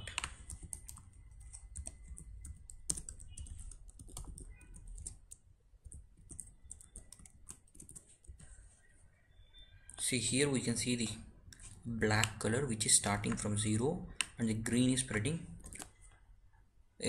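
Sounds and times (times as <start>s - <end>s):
computer keyboard typing: 0.0s - 8.6s, 13.2s - 16.0s.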